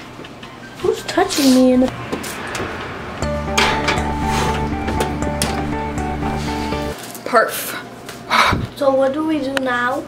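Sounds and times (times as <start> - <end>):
background music: 0.5 - 7.0.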